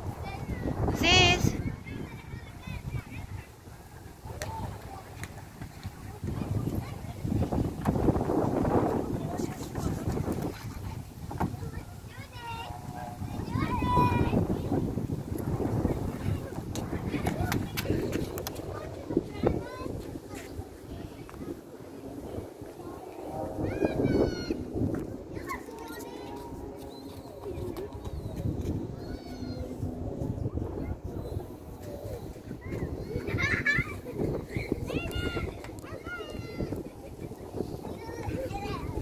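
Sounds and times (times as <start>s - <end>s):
faint children's voices: 0.0s - 39.0s
outdoor background hum: 0.0s - 39.0s
wind rumble on microphone: 0.0s - 39.0s
children calling out: 32.6s - 39.0s.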